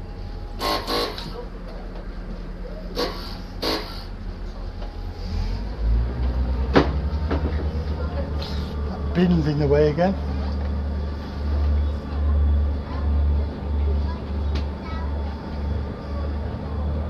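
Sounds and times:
diesel train engine running: 0.0s - 17.0s.

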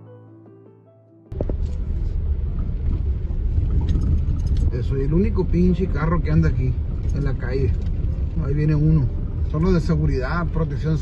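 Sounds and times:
car driving low rumble: 1.3s - 11.0s
wind and rain: 1.3s - 11.0s.

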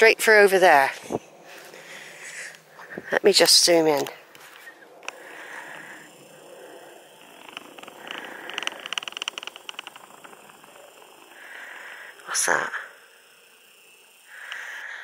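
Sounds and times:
soft breaths: 0.9s - 3.2s, 4.3s - 15.0s
zoom lens motor buzzing: 4.6s - 15.0s.

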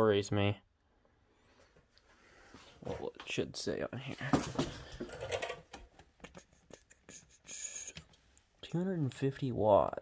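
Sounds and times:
man talking: 0.0s - 0.7s, 2.8s - 4.7s, 8.6s - 10.0s.

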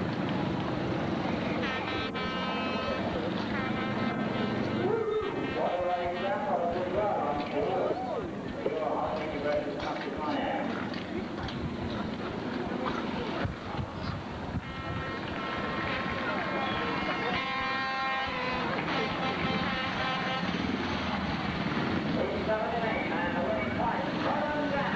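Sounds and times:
motorcycle engines running at low revs: 0.0s - 2.0s, 20.5s - 22.6s
indistinct voices: 1.0s - 24.9s.

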